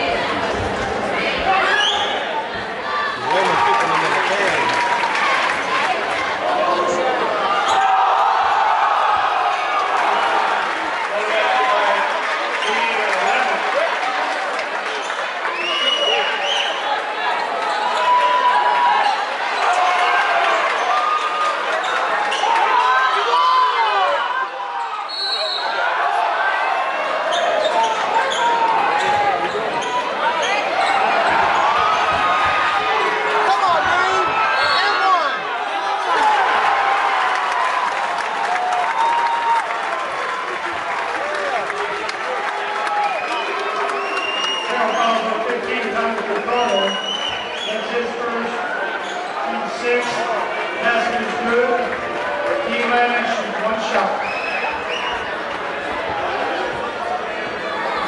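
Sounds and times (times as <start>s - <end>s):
crowd voices and shouts: 0.0s - 58.0s.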